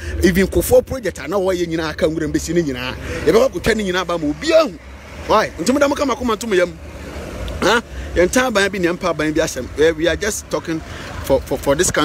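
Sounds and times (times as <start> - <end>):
road traffic rumble: 0.0 - 12.0
voices talking: 0.0 - 12.0.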